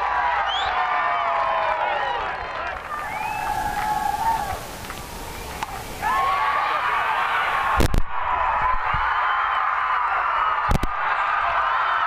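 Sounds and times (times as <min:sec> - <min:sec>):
faint crowd murmur: 0:01.9 - 0:07.8.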